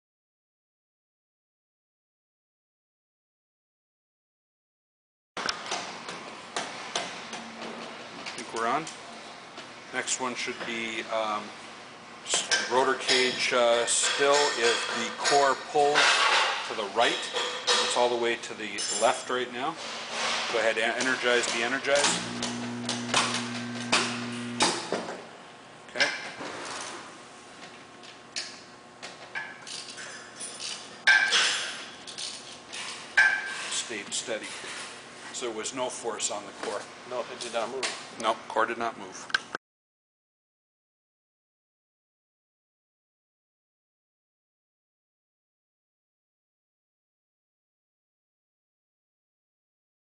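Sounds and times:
electric motor humming: 22.0 - 24.9.

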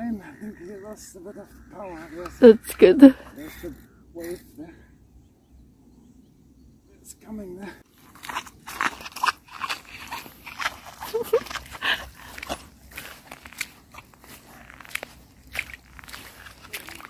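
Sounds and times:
footsteps crunching on sand: 7.8 - 17.0.

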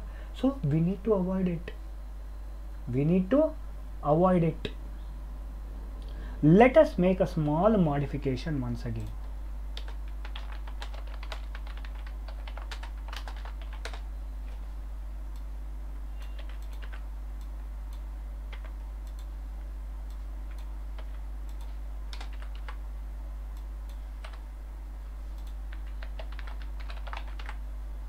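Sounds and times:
steady low hum: 0.0 - 28.0
computer keyboard typing: 9.8 - 14.1, 16.2 - 17.1, 17.9 - 19.3, 20.1 - 22.8, 24.2 - 24.4, 25.4 - 27.6.

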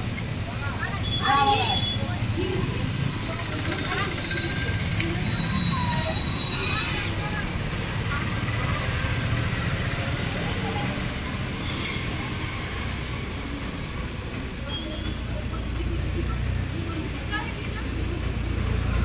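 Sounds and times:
indistinct voices: 0.0 - 19.0
road traffic rumble: 0.0 - 19.0.

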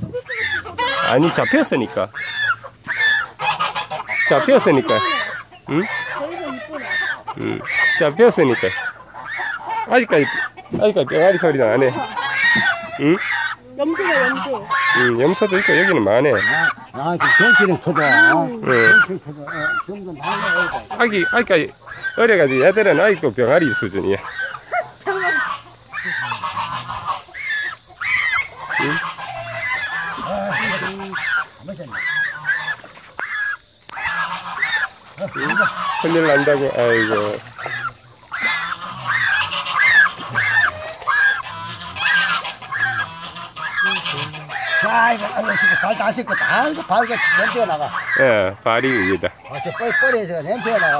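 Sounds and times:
goose honking in distress: 0.0 - 50.9.

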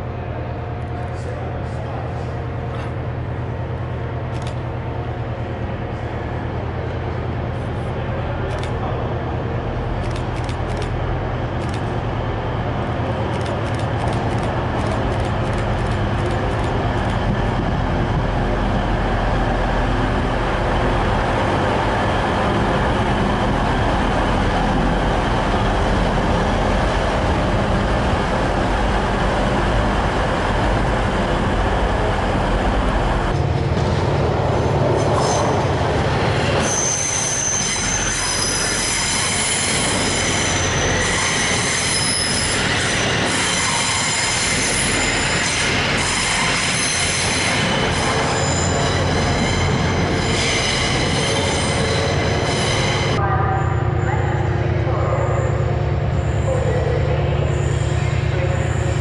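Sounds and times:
train engine rumble: 0.0 - 59.0
train wheel squeal: 35.0 - 54.2, 55.2 - 59.0.

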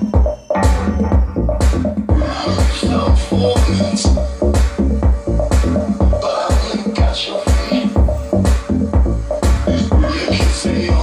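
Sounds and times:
house music with kick drum: 0.0 - 11.0.

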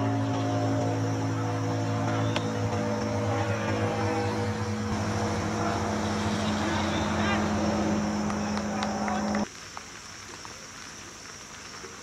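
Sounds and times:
faint voices: 0.0 - 9.5
low engine-like drone: 0.0 - 9.5.

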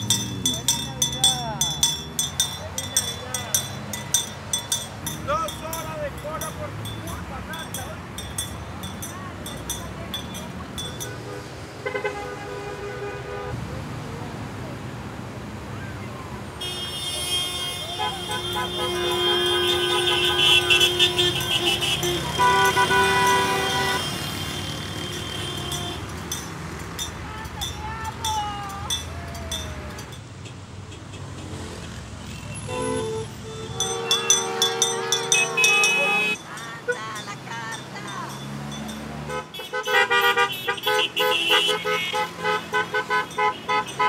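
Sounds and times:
hand bell clink: 0.0 - 11.3, 18.0 - 30.3, 33.7 - 39.3
car horns honking: 0.0 - 13.6, 16.5 - 44.0
traffic noise: 0.0 - 44.0.

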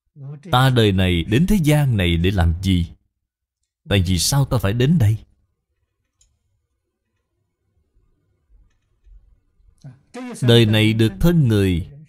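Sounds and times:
man speaking: 0.2 - 3.0, 3.9 - 5.3, 9.8 - 12.0.

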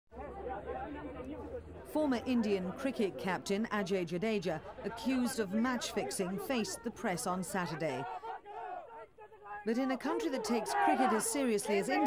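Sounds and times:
indistinct chatter of people: 0.1 - 12.0.

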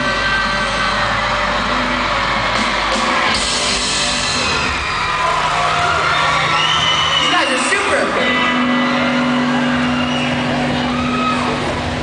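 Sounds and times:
crowd cheering and whooping: 0.0 - 12.0
rock band playing live: 0.0 - 12.0.

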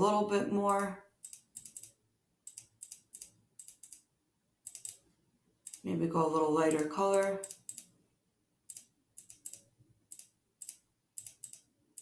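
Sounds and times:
person speaking: 0.0 - 1.1, 5.7 - 7.7
quiet computer mouse clicks: 0.7 - 4.0, 4.7 - 5.0, 6.8 - 7.9, 8.7 - 12.0.

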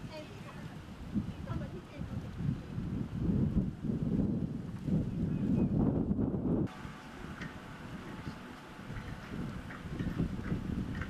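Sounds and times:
wind blowing on microphone: 0.0 - 11.0.

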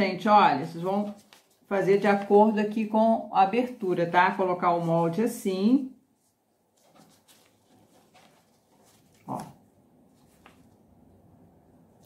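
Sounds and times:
soft cardboard rustles: 0.6 - 2.5, 6.1 - 11.0.

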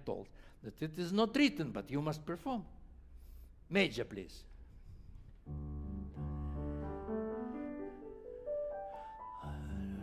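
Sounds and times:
grand piano playing: 5.4 - 10.0.

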